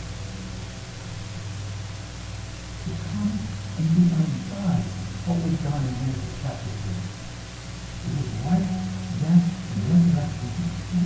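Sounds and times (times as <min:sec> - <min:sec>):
steady low hum: 0:00.0 - 0:11.0
man speaking: 0:02.8 - 0:07.1, 0:08.0 - 0:11.0.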